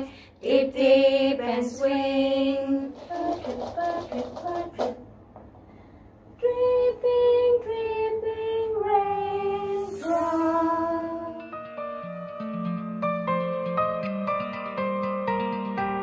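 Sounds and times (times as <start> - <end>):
women singing together: 0.0 - 5.0, 6.4 - 11.5.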